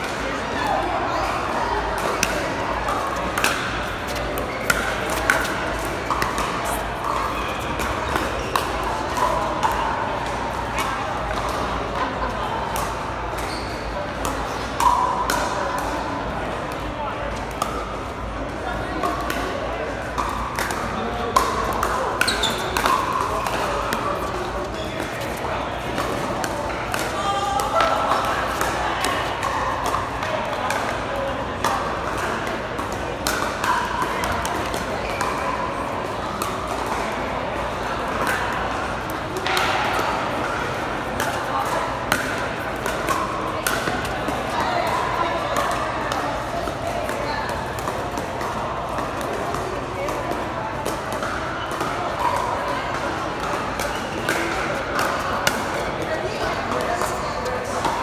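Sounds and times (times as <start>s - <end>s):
crowd chatter: 0.0s - 58.0s.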